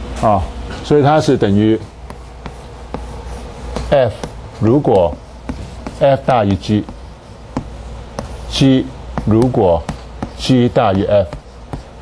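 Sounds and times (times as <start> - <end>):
steady low hum: 0.0 - 12.0
chalk tapping and scratching: 1.5 - 12.0.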